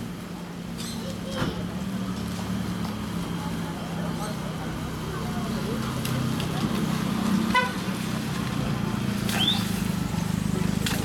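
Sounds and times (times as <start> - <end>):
low engine hum: 0.0 - 11.0
street background: 0.0 - 11.0.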